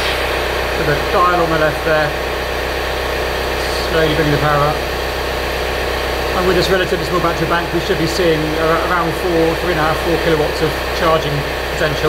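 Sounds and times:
generator running steadily: 0:00.0 - 0:12.0.

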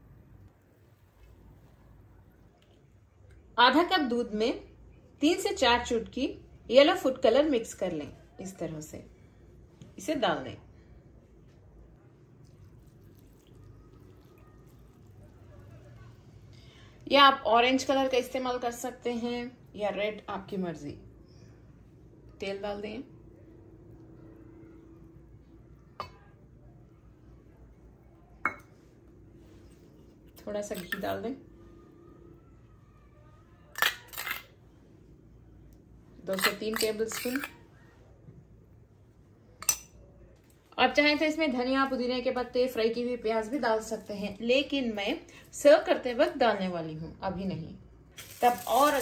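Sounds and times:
faint low hum: 0:00.0 - 0:49.0
milk trickling into pot: 0:12.3 - 0:16.5, 0:48.2 - 0:49.0
metal spoon clinking on cookware: 0:39.6 - 0:40.0.

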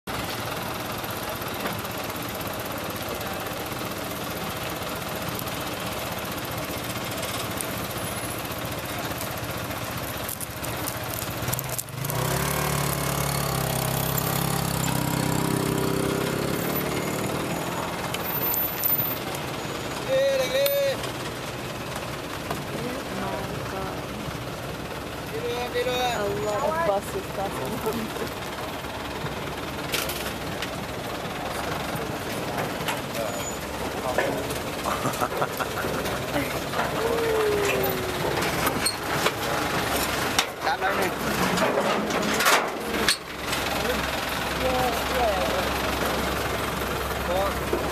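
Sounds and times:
bus engine running: 0:00.1 - 0:47.9.

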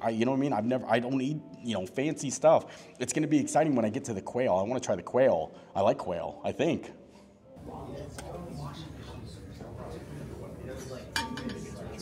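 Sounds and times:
background chatter: 0:06.6 - 0:12.0
tableware clinking on table: 0:11.1 - 0:12.0.

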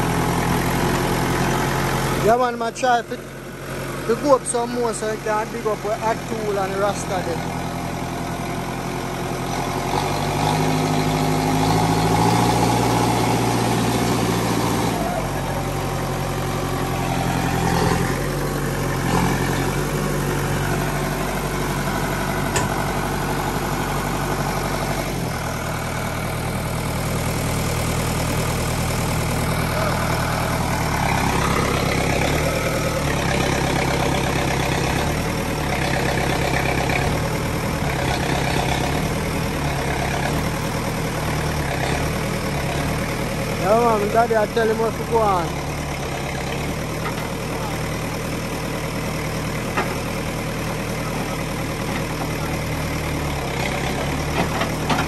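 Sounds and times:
diesel engine working under load: 0:00.0 - 0:55.0.

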